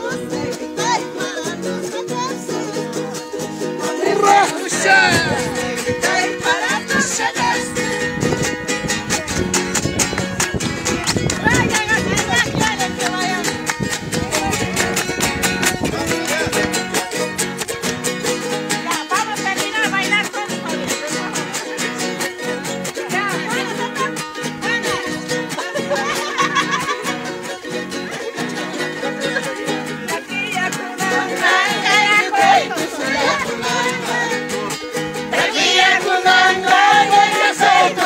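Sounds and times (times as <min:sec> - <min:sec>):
people singing and calling: 0:00.0 - 0:38.0
small string instruments strummed: 0:00.0 - 0:38.0.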